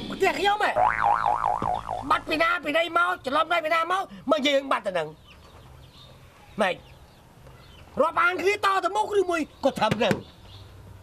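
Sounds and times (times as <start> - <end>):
wobbling cartoon boing: 0.8 - 2.2.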